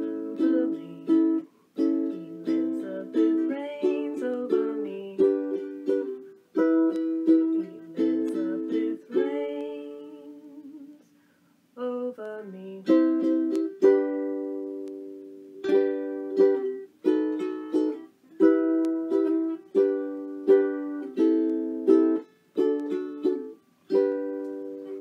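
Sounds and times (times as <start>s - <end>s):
ukulele strumming chords: 0.0s - 11.0s, 11.8s - 25.0s.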